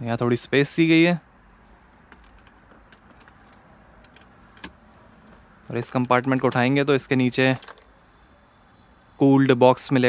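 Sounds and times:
plastic clicks: 7.5 - 8.0.

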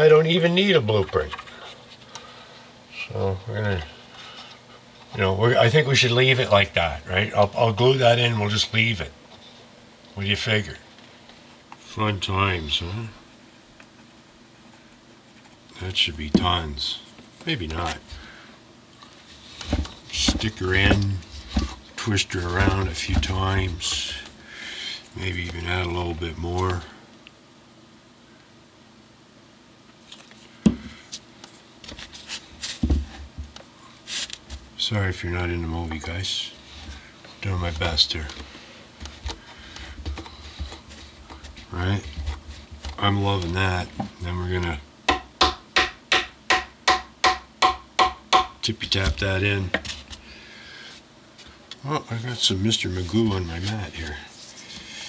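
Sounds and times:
handling wooden workpiece: 19.5 - 24.4
sharp knock on workbench: 45.1 - 48.6
small hammer tapping wood: 45.1 - 48.6.

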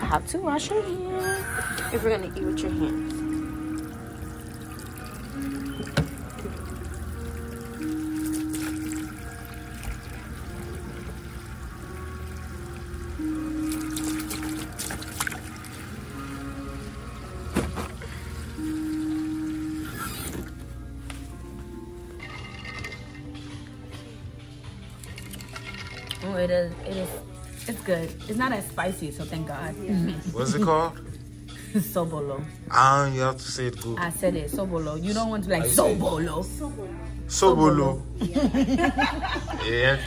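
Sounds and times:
background music: 0.0 - 40.0
tap water running into sink: 1.9 - 19.7.

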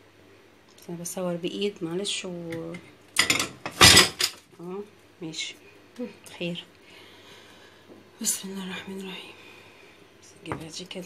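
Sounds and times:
dishes and utensils clattering: 3.2 - 4.4.

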